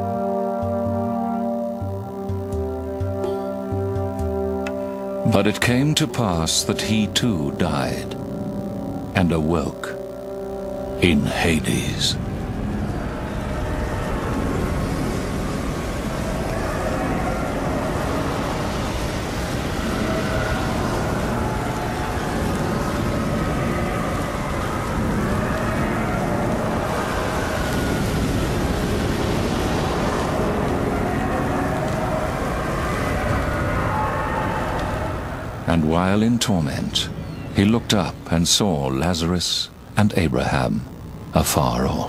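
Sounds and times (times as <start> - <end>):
roar of blazing fire: 12.2 - 35.7.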